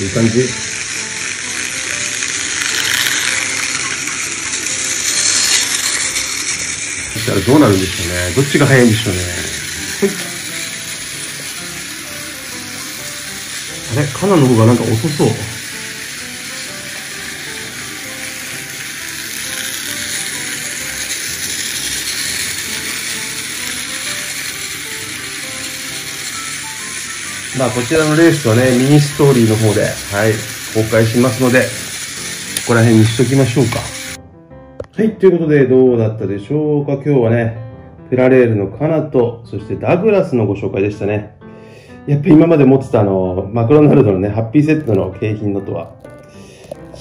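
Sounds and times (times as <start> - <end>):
toy trains buzzing rattle: 0.0 - 34.2.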